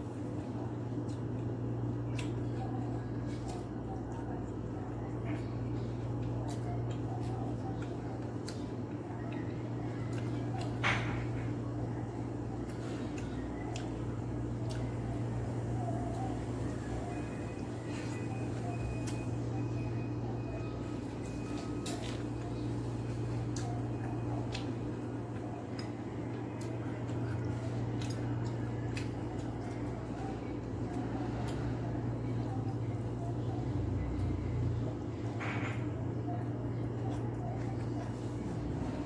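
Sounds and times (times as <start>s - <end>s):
low electrical hum: 0.0s - 39.0s.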